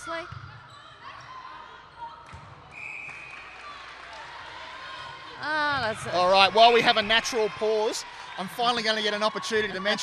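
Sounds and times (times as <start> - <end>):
umpire's whistle: 2.7 - 3.6.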